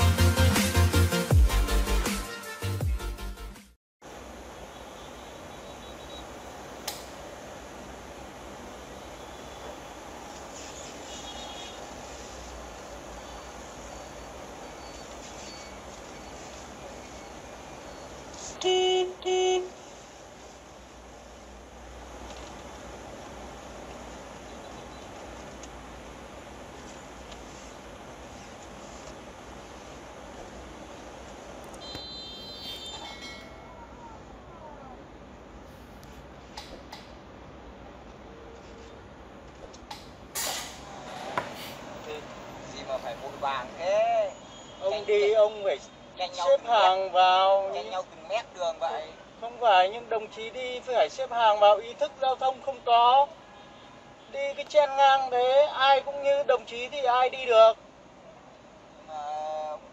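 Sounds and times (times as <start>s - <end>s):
engine and road hum: 4.0s - 44.9s
even hiss: 4.1s - 18.7s, 39.9s - 44.3s
vehicle horn honking: 4.6s - 6.4s, 11.0s - 11.9s, 18.6s - 19.8s, 31.8s - 33.7s
sharp click: 6.8s - 7.1s.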